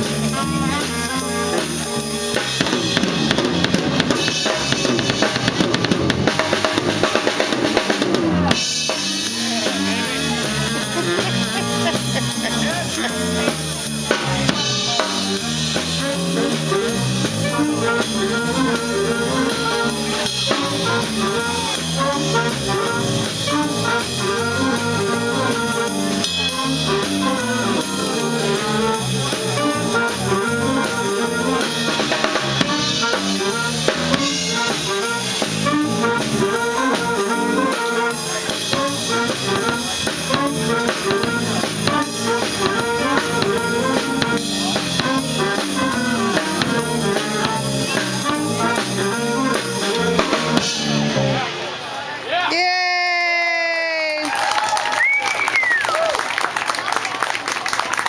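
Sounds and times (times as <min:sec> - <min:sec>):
drum kit: 0:00.0 - 0:51.8
jazz big band playing: 0:00.0 - 0:52.2.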